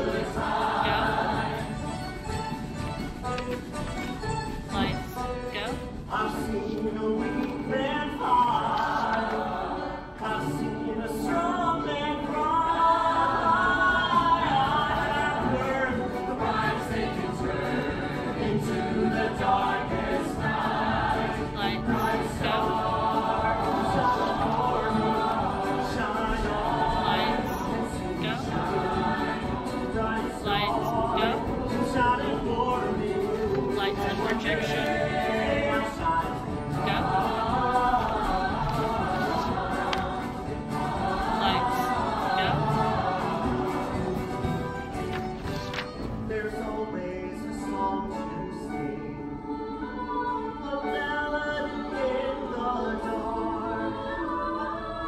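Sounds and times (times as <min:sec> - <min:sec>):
cast singing as a choir: 0:00.0 - 0:02.6, 0:06.1 - 0:55.0
instrumental accompaniment: 0:00.0 - 0:10.0, 0:13.5 - 0:47.2.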